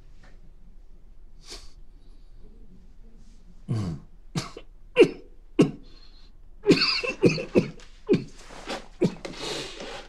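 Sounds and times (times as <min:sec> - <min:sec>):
man coughing: 0:03.7 - 0:05.9, 0:06.6 - 0:08.4.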